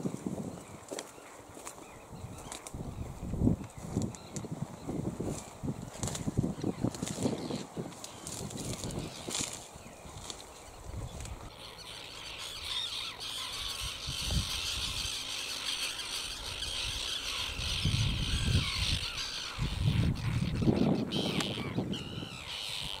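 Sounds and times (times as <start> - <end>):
terns calling harshly: 6.0 - 23.0.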